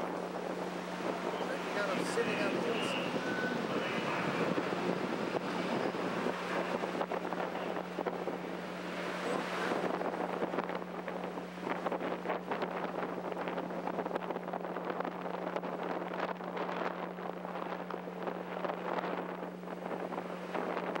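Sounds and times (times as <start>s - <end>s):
wind noise on microphone: 0.0s - 21.0s.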